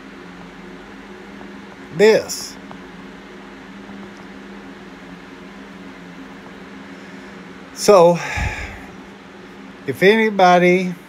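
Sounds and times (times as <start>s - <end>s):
fan machine humming: 0.0s - 11.0s.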